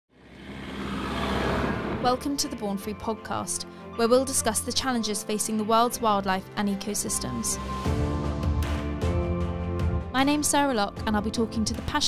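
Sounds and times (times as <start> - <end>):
vehicle driving on dirt track: 0.1 - 2.2.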